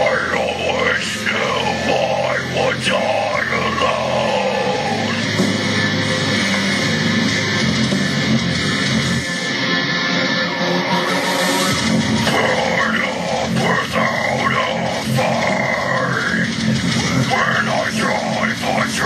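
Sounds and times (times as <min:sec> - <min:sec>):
harsh screamed vocals: 0:00.0 - 0:07.4, 0:10.2 - 0:19.0
distorted guitars and drums: 0:00.0 - 0:19.0.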